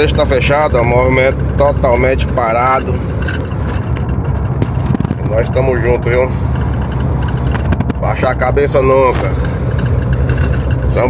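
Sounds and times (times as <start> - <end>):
road noise: 0.0 - 11.0
vehicle engine droning: 0.0 - 11.0.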